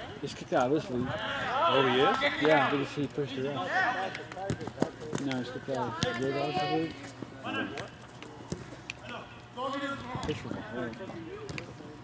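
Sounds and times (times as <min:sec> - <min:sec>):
feet and ball tapping on turf: 0:04.1 - 0:11.9.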